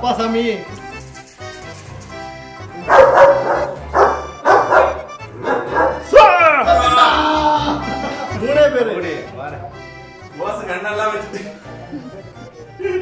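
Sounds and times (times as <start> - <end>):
background music: 0.0 - 13.0
dog barking: 2.8 - 6.1
dog yelping: 2.8 - 6.2.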